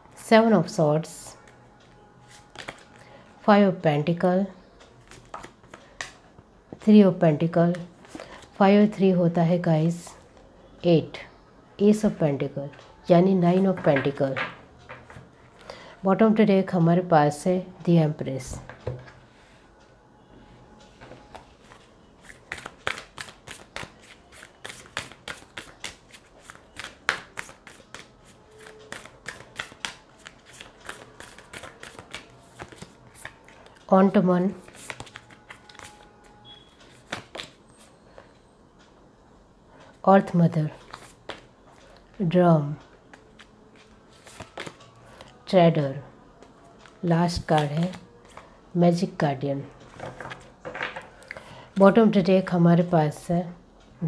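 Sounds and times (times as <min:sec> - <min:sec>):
cards clicking and snapping: 0:22.5 - 0:33.8.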